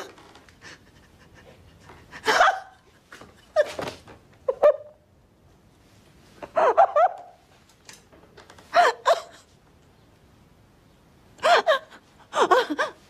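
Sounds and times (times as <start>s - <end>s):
woman gasping and sobbing: 11.4s - 13.0s.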